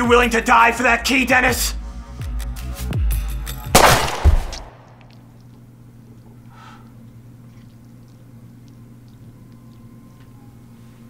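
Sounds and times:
deep booming hits: 0:03.8 - 0:04.9
pistol gunshot: 0:03.8 - 0:04.9.

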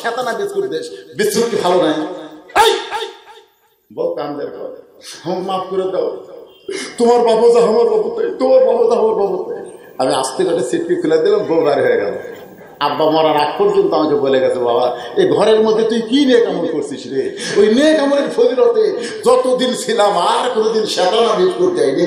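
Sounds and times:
man preaching into a microphone: 0:00.0 - 0:22.0
man exclaiming loudly: 0:02.5 - 0:03.4.

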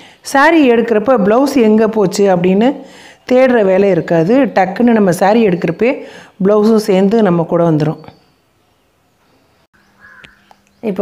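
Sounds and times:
woman speaking: 0:00.2 - 0:08.2
harsh bird call: 0:09.4 - 0:10.6.

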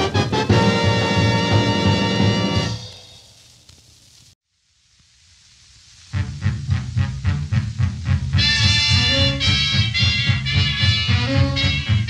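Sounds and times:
swing dance band music: 0:00.0 - 0:03.0, 0:06.1 - 0:12.0
faint hiss: 0:00.0 - 0:12.0.

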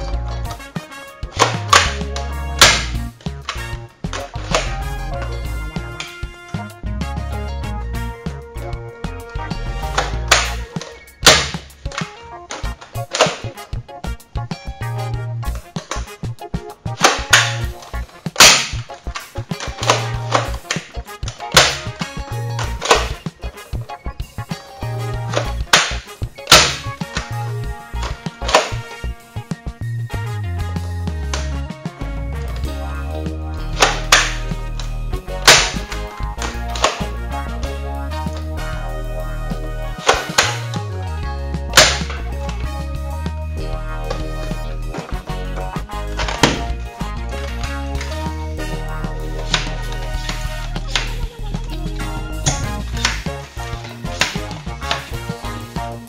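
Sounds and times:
background music with bass beat: 0:00.0 - 0:56.0
toy guns firing: 0:01.4 - 0:04.8, 0:10.0 - 0:13.6, 0:17.0 - 0:23.2, 0:25.3 - 0:27.4, 0:28.0 - 0:28.9, 0:33.6 - 0:37.2, 0:40.0 - 0:40.8, 0:41.7 - 0:42.3, 0:46.1 - 0:46.8, 0:49.4 - 0:51.3, 0:52.5 - 0:55.2.

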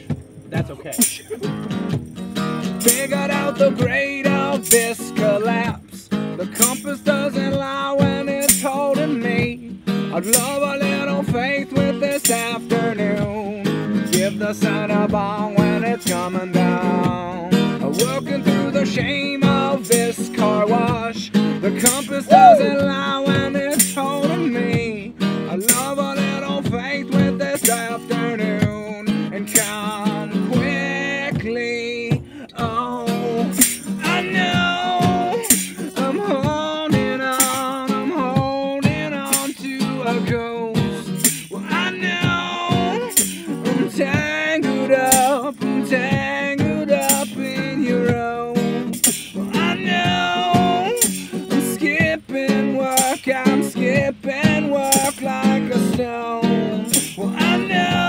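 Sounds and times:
acoustic guitar strummed: 0:00.0 - 0:58.0
tambourine beat: 0:00.0 - 0:58.0
person singing: 0:21.9 - 0:22.9, 0:32.3 - 0:40.9, 0:41.5 - 0:45.6, 0:49.5 - 0:58.0.

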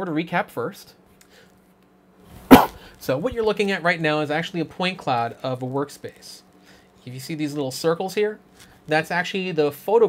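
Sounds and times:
dog barking: 0:02.5 - 0:02.8.

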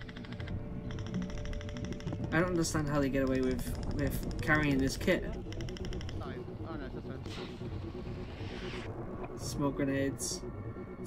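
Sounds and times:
airsoft gun rapid clicks: 0:00.0 - 0:02.2, 0:03.7 - 0:04.8, 0:05.4 - 0:06.2.

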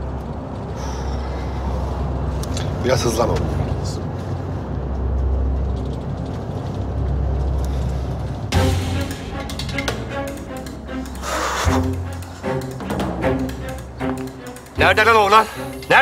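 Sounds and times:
dramatic music with low strings: 0:00.0 - 0:16.0
deep drum hit: 0:08.5 - 0:10.4.

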